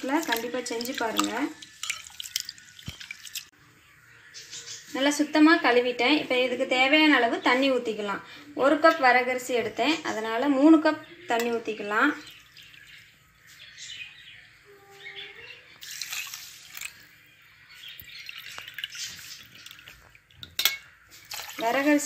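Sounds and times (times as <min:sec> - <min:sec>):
water pouring into steel vessel: 0:00.0 - 0:03.5, 0:15.8 - 0:17.0, 0:18.1 - 0:22.0.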